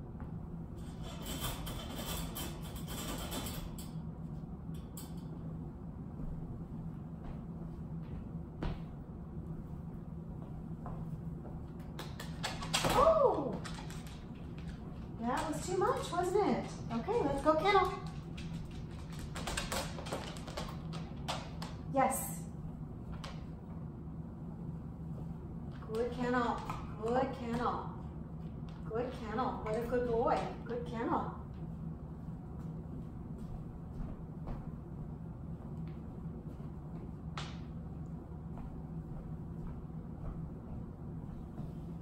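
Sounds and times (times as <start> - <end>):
steady low hum: 0.0 - 42.0
dog claws tapping on floor: 11.8 - 21.8.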